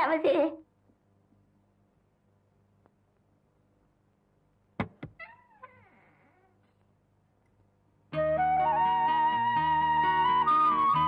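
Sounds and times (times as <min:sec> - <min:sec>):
sharp knocks: 0:04.8 - 0:05.2
meow-like animal cry: 0:05.2 - 0:06.6.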